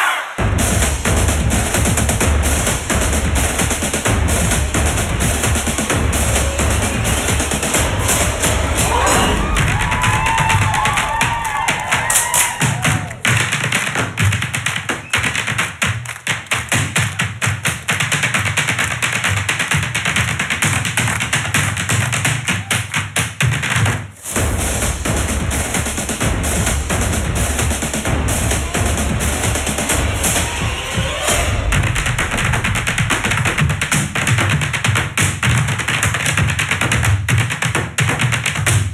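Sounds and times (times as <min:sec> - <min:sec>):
backing track with bass beat: 0:00.4 - 0:15.0, 0:24.1 - 0:36.4
hard-shoe dance taps: 0:00.5 - 0:30.0, 0:31.3 - 0:38.9.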